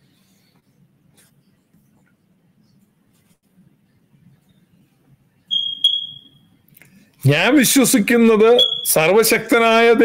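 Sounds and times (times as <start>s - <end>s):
high-pitched beep: 5.5s - 6.4s, 8.6s - 9.0s.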